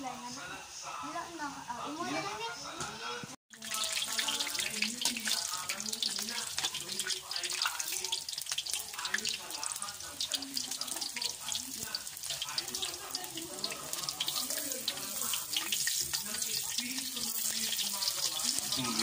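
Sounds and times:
food deep-frying in hot oil: 3.5s - 19.0s
metal utensil stirring: 3.5s - 19.0s.

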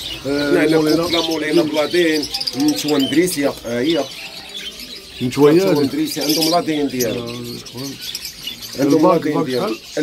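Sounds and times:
birds chirping: 0.0s - 10.0s
people talking: 0.2s - 4.2s, 5.2s - 8.0s, 8.8s - 10.0s.

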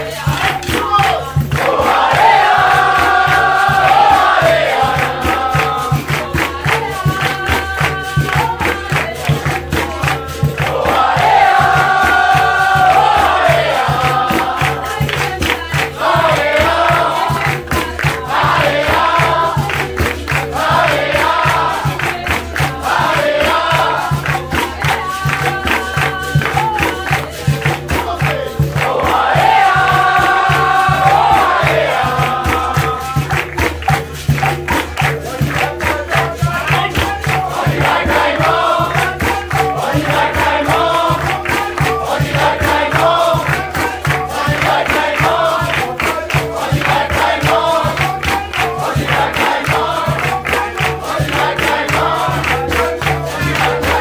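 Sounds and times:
berimbau and drum rhythm: 0.0s - 54.0s
group singing: 0.0s - 54.0s
people clapping: 0.0s - 54.0s.

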